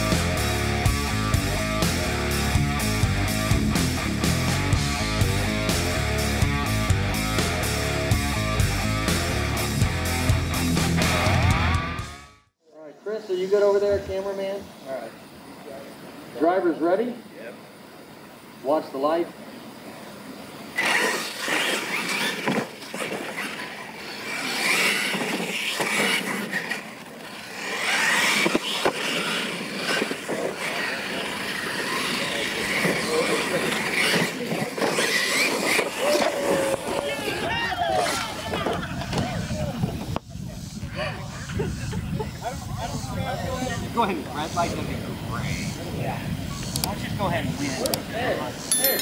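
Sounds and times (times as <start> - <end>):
electric motors whining: 20.7 - 38.8
tyres on dirt: 20.7 - 39.3.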